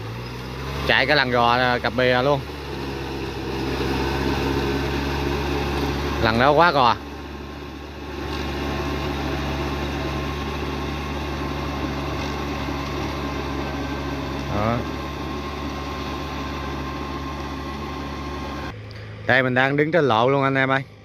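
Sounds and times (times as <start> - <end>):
tractor diesel engine droning: 0.0 - 21.0.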